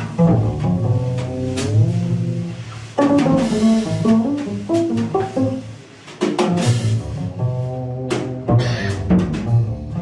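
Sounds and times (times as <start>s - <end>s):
jazz band playing: 0.0s - 10.0s.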